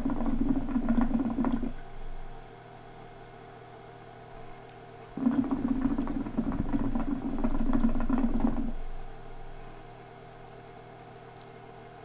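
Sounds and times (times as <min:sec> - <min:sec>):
hookah water bubbling: 0:00.0 - 0:02.4, 0:05.2 - 0:09.6.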